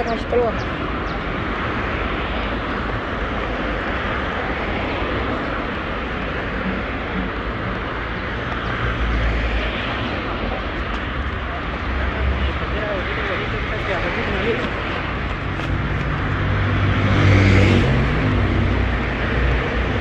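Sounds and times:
traffic noise: 0.0s - 20.0s.

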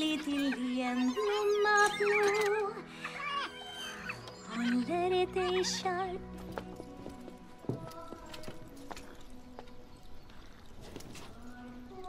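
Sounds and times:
horse hooves clopping: 6.2s - 12.0s.

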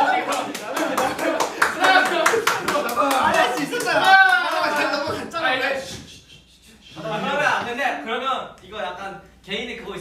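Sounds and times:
rapid hand clapping: 0.0s - 5.2s
people laughing and shouting: 0.0s - 6.3s.

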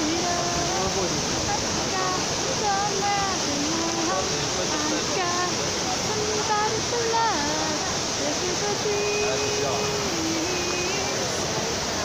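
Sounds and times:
woman singing: 0.0s - 0.9s, 1.5s - 12.0s
fountain water rushing: 0.0s - 12.0s.

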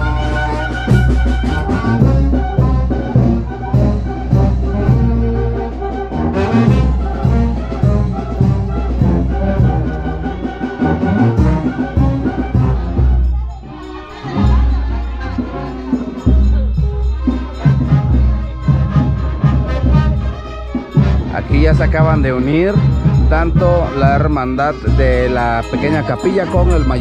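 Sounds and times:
brass band playing lively tune: 0.0s - 27.0s.

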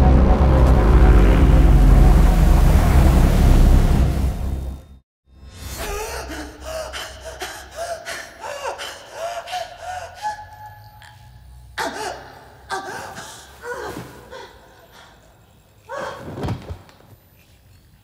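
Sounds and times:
woman gasping and breathing: 5.8s - 11.2s.

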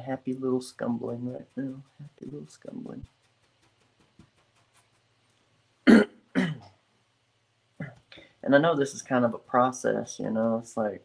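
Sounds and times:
man coughing: 5.9s - 6.7s.

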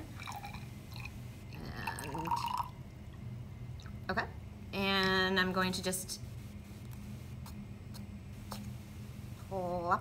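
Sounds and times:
water trickling into test tube: 0.2s - 2.9s.

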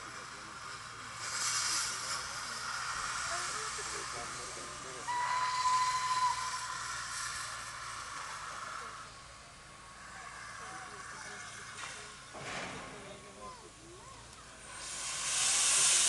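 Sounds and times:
steam locomotive hissing: 0.0s - 16.0s
steam whistle blast: 5.0s - 7.5s.

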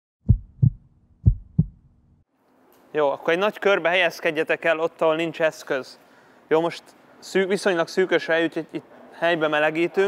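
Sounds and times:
heartbeat thumps: 0.2s - 1.9s.

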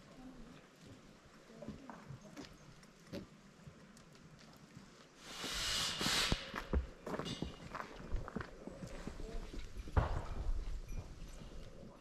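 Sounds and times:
quiet forest background: 0.0s - 12.0s
footsteps on wooden boardwalk: 6.4s - 10.9s.

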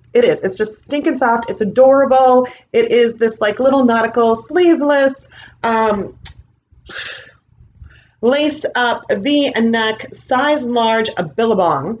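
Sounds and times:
woman breathing: 5.3s - 5.6s, 6.8s - 8.2s.

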